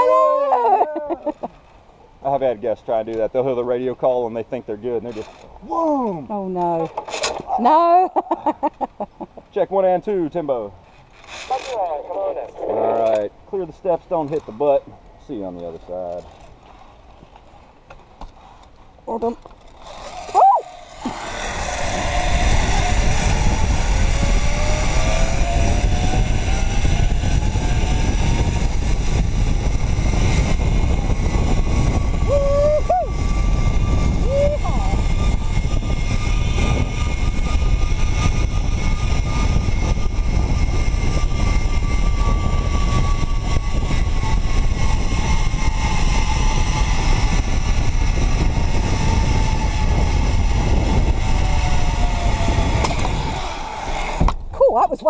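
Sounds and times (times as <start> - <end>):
zipline pulleys whining on cable: 0.0 - 4.2, 4.9 - 5.6, 10.7 - 13.3, 15.6 - 54.4
wind rush on microphone: 19.8 - 55.0.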